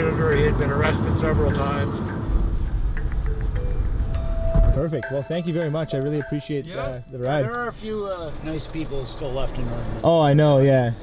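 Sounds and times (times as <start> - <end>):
car engine and tyres rumbling: 0.0 - 4.9, 5.8 - 11.0.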